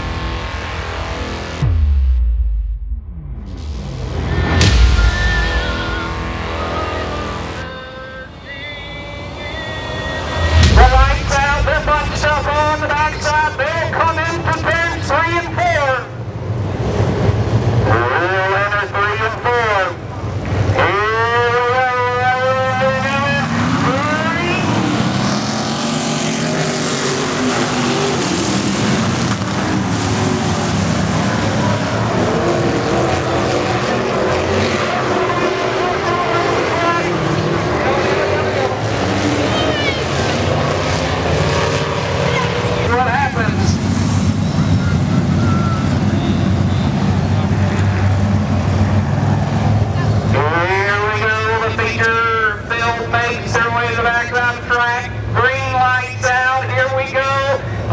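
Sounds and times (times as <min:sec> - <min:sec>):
race car engines passing by: 0:03.5 - 0:57.9.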